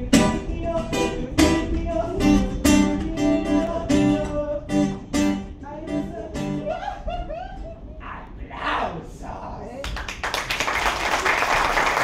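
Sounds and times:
acoustic guitar strumming chords: 0:00.0 - 0:06.9.

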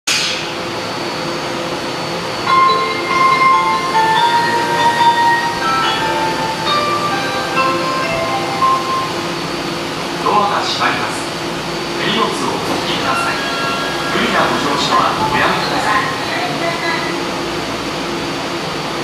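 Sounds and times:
subway train hum: 0:00.1 - 0:19.0
platform chime melody: 0:02.4 - 0:09.6.

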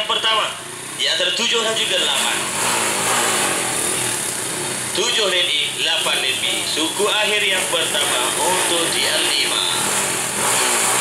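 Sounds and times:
motorcycle engines buzzing: 0:00.0 - 0:11.0.

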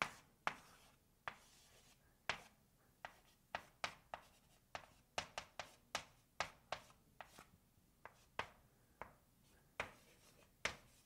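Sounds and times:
chalk scratching: 0:00.0 - 0:08.6, 0:09.4 - 0:11.0
chalk tapping on blackboard: 0:00.0 - 0:09.2, 0:09.8 - 0:11.0.

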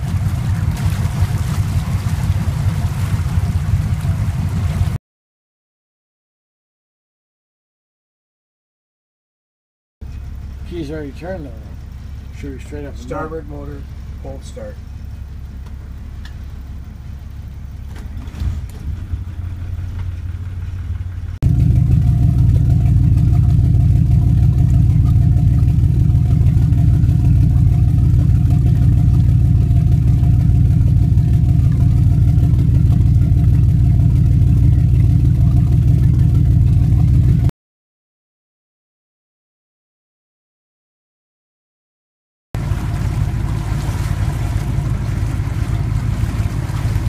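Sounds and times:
diesel engine idling: 0:00.0 - 0:05.0, 0:10.0 - 0:37.5, 0:42.6 - 0:47.0.

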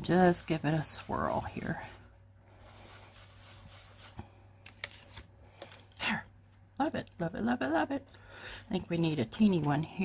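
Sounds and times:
paper towel scuffing paper: 0:00.0 - 0:04.3
paper clicks and rustles: 0:04.6 - 0:06.0.

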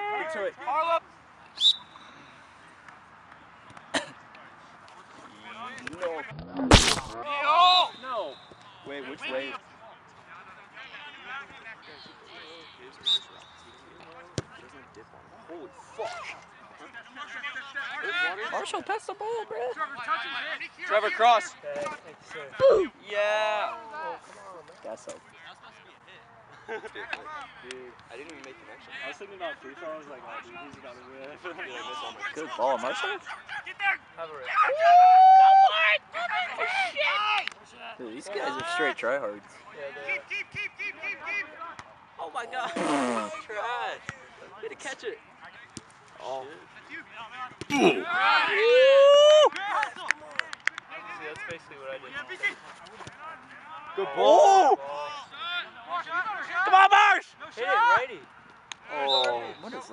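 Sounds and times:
referee whistle blast: 0:01.6 - 0:02.2, 0:13.0 - 0:13.8.

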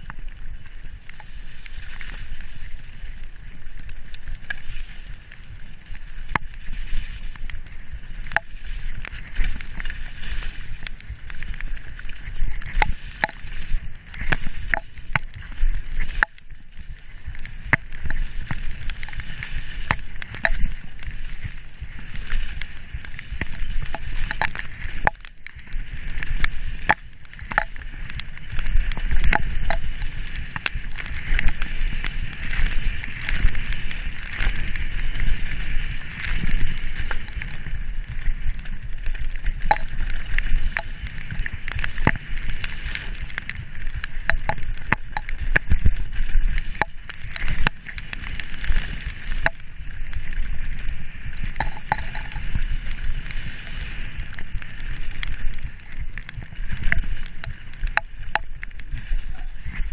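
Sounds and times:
bike tyres rumbling on dirt: 0:00.0 - 0:59.9.

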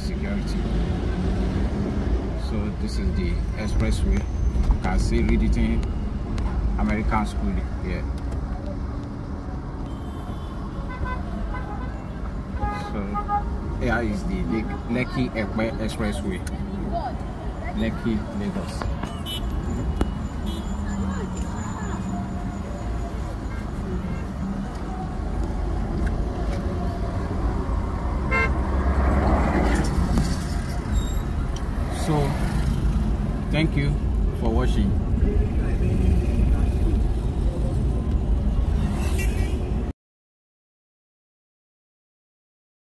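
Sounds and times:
car road and engine rumble: 0:00.0 - 0:39.9
car horn toot: 0:09.8 - 0:13.5, 0:19.1 - 0:21.4, 0:28.3 - 0:28.6
car horn short toots: 0:28.3 - 0:28.6.

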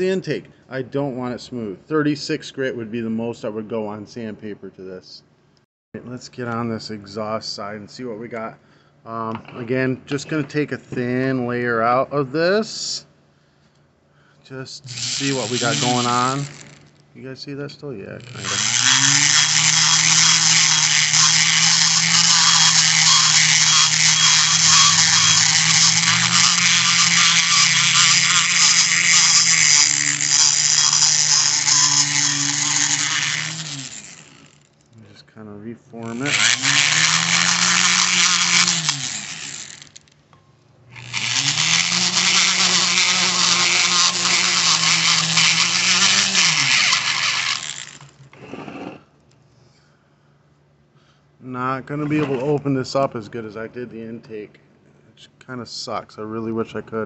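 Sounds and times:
electric rotary grinder cutting metal: 0:14.9 - 0:16.9, 0:18.2 - 0:34.7, 0:36.0 - 0:40.1, 0:40.9 - 0:48.2.

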